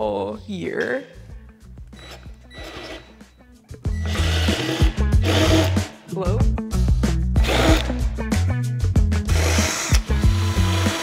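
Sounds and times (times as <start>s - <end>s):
soft background music: 0.0s - 11.0s
cordless drill boring through plywood: 2.0s - 3.1s, 4.0s - 5.8s, 7.4s - 7.9s, 9.3s - 11.0s.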